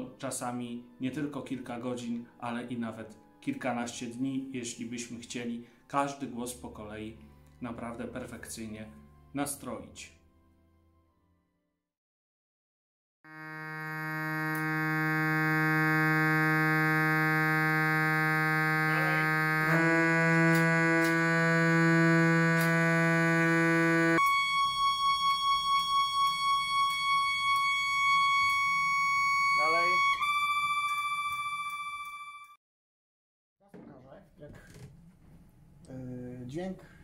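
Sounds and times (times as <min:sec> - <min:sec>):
organ reed pipes held notes: 0:13.3 - 0:32.5.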